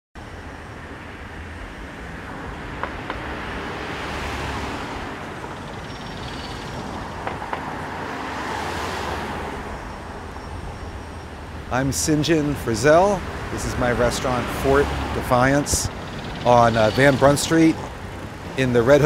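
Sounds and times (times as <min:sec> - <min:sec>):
cars passing: 0:00.2 - 0:19.0
road traffic hum: 0:00.2 - 0:19.0.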